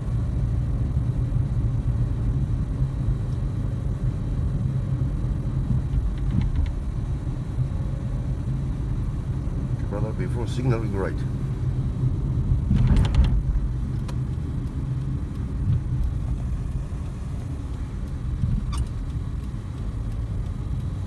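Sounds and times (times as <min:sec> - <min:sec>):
car engine rumble: 0:00.0 - 0:21.0
road noise inside car: 0:00.0 - 0:21.0.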